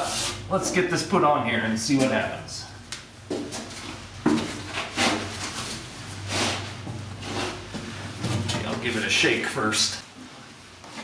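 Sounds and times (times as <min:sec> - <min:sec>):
low steady hum: 0:00.0 - 0:11.0
rustling and scraping of plastic jug: 0:03.4 - 0:09.0.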